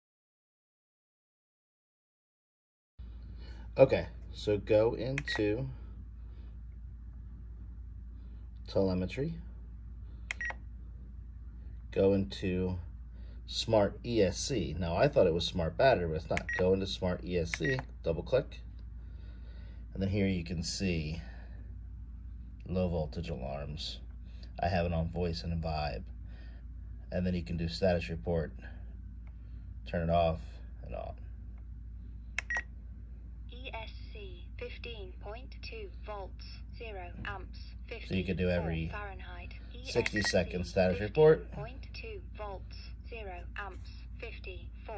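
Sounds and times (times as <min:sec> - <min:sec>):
short transmitter beeps: 0:16.4 - 0:16.7, 0:39.9 - 0:40.5
synthesized voice speaking: 0:33.6 - 0:44.9.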